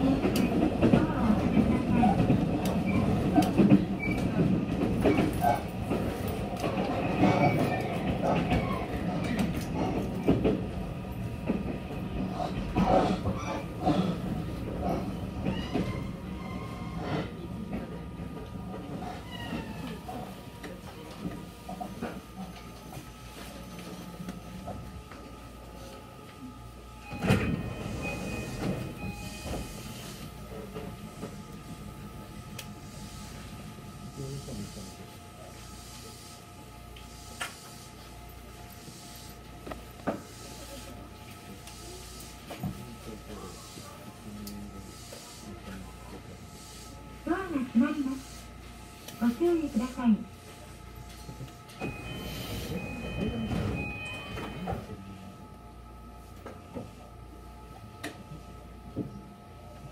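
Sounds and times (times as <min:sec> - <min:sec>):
train rumble: 0:00.0 - 0:37.8.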